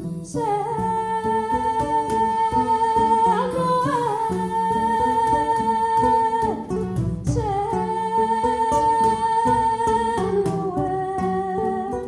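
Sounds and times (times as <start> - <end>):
hand percussion: 0.0 - 12.0
plucked acoustic guitars: 0.0 - 12.0
woman singing long notes: 0.0 - 12.0.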